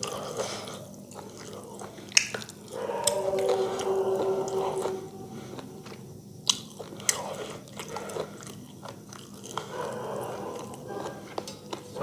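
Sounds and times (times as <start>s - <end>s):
chewing food: 0.0s - 12.0s
wet mouth clicks: 1.2s - 3.2s.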